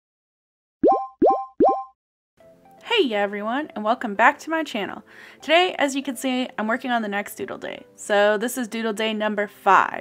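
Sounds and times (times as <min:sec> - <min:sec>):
cartoon bloop pops: 0:00.8 - 0:02.0.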